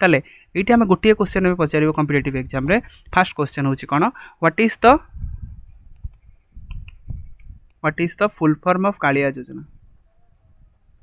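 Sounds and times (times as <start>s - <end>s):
low rumbling bumps: 5.1s - 7.7s
man speaking: 7.8s - 9.7s.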